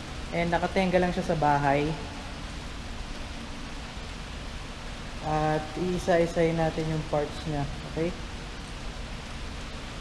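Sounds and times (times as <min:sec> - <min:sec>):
rain hissing: 0:00.0 - 0:10.0.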